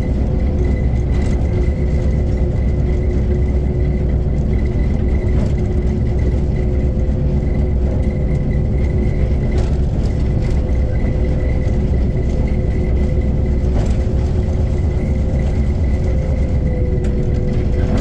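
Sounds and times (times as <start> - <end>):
train rumble: 0.0 - 18.0
wheels clicking on track: 0.0 - 18.0.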